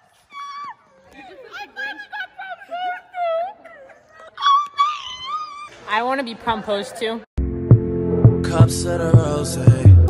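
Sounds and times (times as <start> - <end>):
girl squealing: 0.2 - 1.2, 3.2 - 5.7
girl wailing playfully: 0.2 - 5.7.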